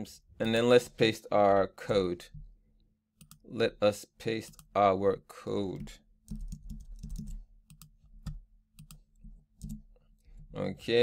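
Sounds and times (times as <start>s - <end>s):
computer keyboard clicks: 5.8s - 9.0s.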